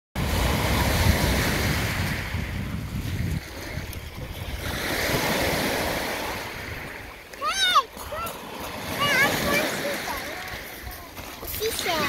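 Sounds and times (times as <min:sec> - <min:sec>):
small waves breaking on pebbles: 0:00.2 - 0:12.0
wind buffeting microphone: 0:00.2 - 0:12.0.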